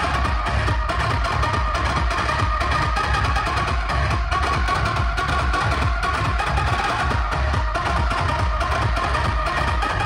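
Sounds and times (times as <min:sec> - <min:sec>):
loud music with heavy bass drum: 0:00.0 - 0:10.0.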